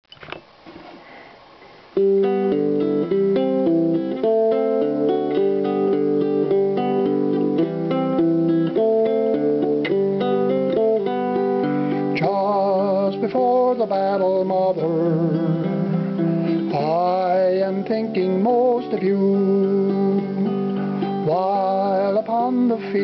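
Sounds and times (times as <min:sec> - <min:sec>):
fingerpicked acoustic guitar: 0:02.0 - 0:23.0.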